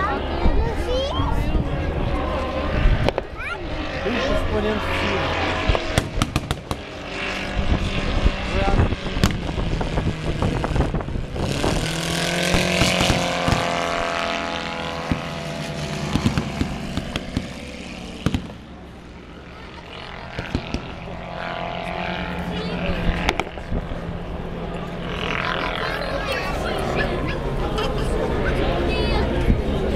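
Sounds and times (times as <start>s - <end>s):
people talking: 0.0s - 5.7s, 7.7s - 8.9s, 18.8s - 23.3s, 25.1s - 29.9s
propeller aircraft engines droning: 0.0s - 29.9s.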